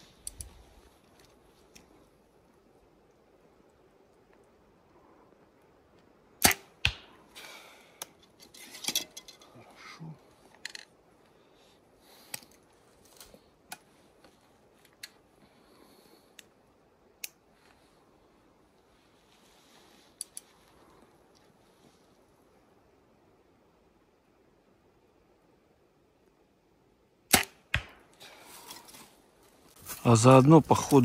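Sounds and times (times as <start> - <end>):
rustling and clicks of bow handling: 0.0 - 4.6, 7.9 - 9.6, 10.3 - 11.4, 12.1 - 18.0, 19.0 - 22.2, 28.2 - 31.0
bowstring snap: 6.4 - 7.3, 27.3 - 28.2
sharp crack: 6.4 - 8.2, 27.3 - 28.6.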